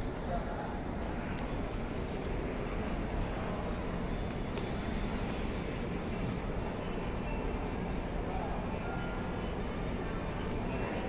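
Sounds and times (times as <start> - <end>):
faint voices of shoppers: 0.0 - 11.0.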